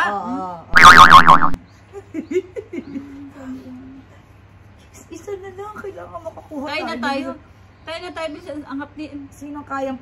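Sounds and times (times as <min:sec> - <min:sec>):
cartoon boing sound effect: 0:00.8 - 0:01.6.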